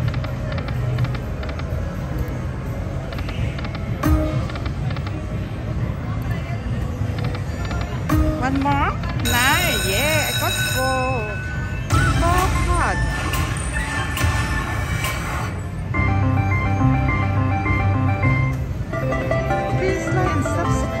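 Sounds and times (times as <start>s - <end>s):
slot machine electronic music: 0.0s - 5.7s, 7.1s - 21.0s.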